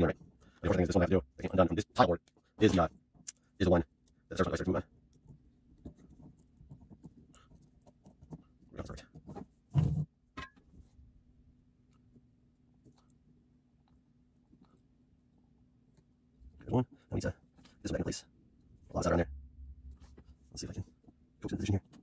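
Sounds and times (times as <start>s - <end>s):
faint scratching and clicks: 0.0s - 10.1s, 11.8s - 22.0s.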